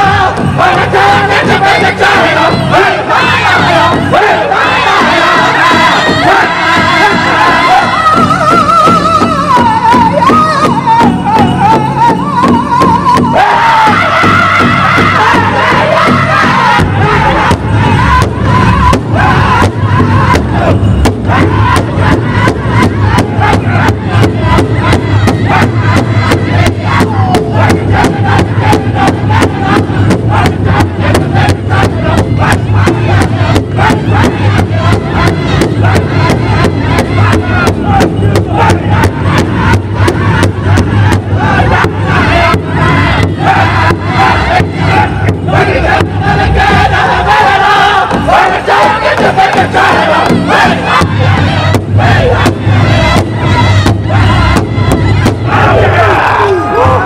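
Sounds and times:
large drum steady beat: 0.0 - 57.0
men singing: 0.0 - 57.0.

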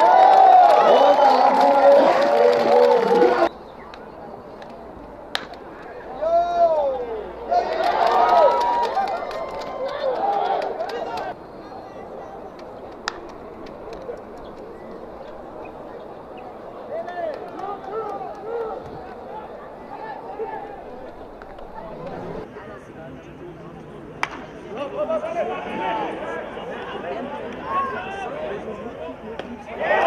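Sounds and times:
spectators and players shouting: 0.0 - 3.5, 5.9 - 12.5, 14.8 - 22.5, 29.6 - 30.0.

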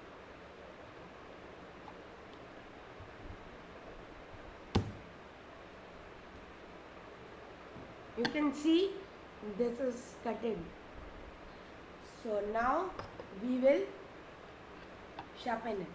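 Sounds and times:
steady low hiss: 0.0 - 15.9.

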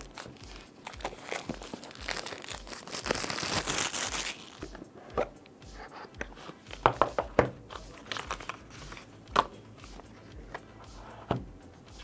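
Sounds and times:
plastic film crinkling: 0.0 - 4.9, 7.8 - 9.1.

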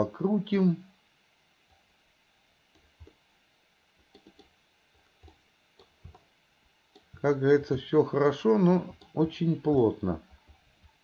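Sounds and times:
computer mouse clicks: 4.0 - 4.6, 5.2 - 6.3, 6.9 - 7.2, 8.9 - 9.2.

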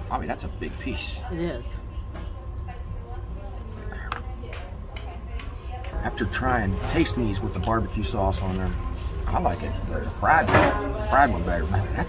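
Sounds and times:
murmur of distant voices: 0.0 - 12.0
steady low hum: 0.0 - 12.0.

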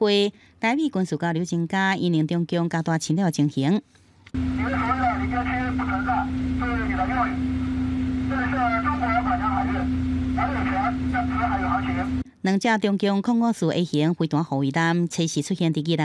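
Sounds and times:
electrical hum: 4.3 - 12.4
voice over radio speaker: 4.4 - 12.2.

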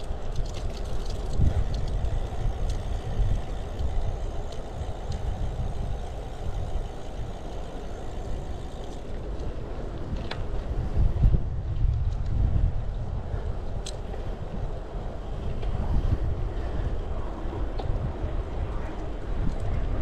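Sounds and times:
bicycle tyres rolling on asphalt: 0.0 - 20.0
wind buffeting microphone: 0.0 - 20.0.

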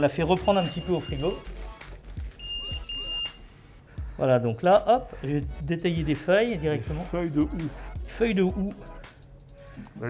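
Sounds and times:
high-pitched electronic beeps: 0.3 - 1.5, 2.4 - 3.4, 7.0 - 9.1.

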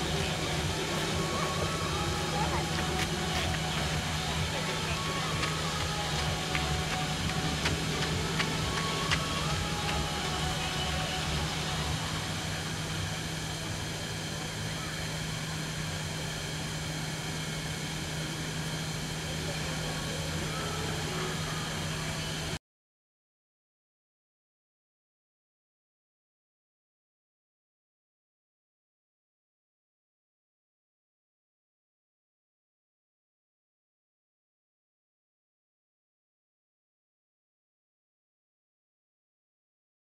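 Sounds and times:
distant voices: 0.0 - 22.6
steady low hum: 0.0 - 22.6.

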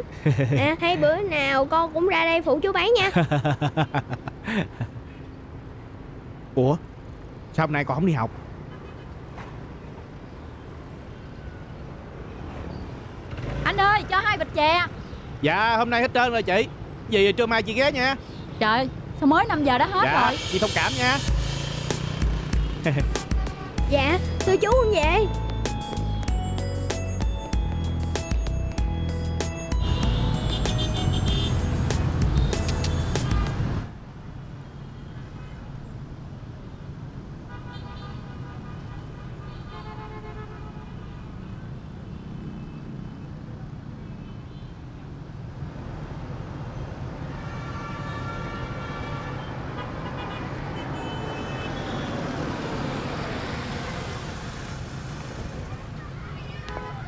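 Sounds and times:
motorbikes and cars running: 12.3 - 33.9, 41.3 - 44.0, 50.4 - 57.0
music: 20.0 - 33.8.

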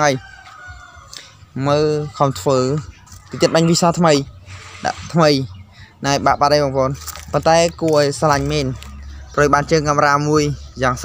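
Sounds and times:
man speaking: 0.0 - 0.2, 1.5 - 11.0
distant rooster crowing: 0.0 - 1.5.

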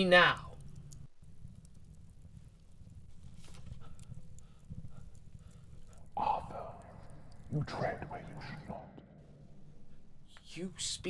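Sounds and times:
faint crackles: 0.0 - 9.2
low dark ambient drone: 0.7 - 10.2.

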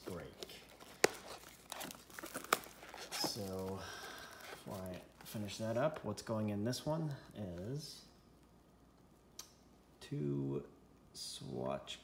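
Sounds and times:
plastic shrink wrap tearing: 0.0 - 5.2.

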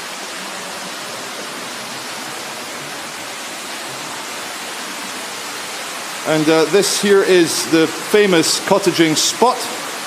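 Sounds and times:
water rushing at canal lock: 0.0 - 10.0.

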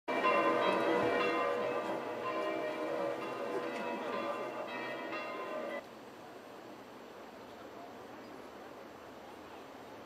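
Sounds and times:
church bells ringing: 0.1 - 5.8.

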